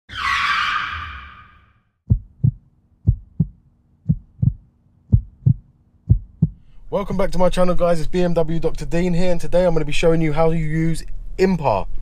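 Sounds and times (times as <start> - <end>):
heartbeat thumps: 2.1 - 6.6.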